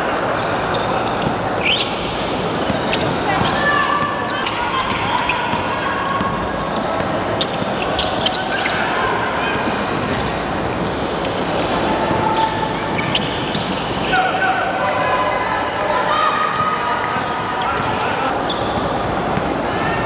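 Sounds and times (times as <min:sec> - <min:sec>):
sneakers squeaking: 0:00.0 - 0:20.0.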